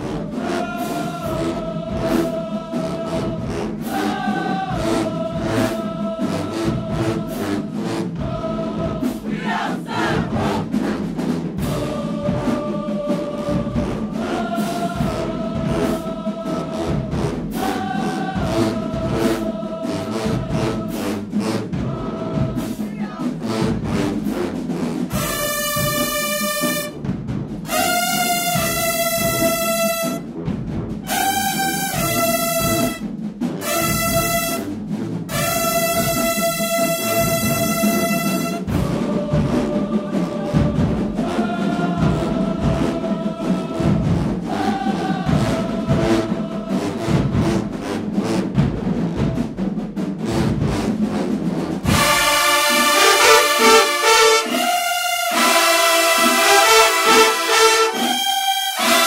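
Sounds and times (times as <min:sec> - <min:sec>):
horns playing bright held chords: 0:00.0 - 0:09.1, 0:25.1 - 0:26.9, 0:27.7 - 0:30.2, 0:31.0 - 0:33.0, 0:33.6 - 0:34.6, 0:35.3 - 0:40.4, 0:51.9 - 0:59.0
marching band playing: 0:00.0 - 0:59.0
steady drum beat: 0:00.0 - 0:59.0.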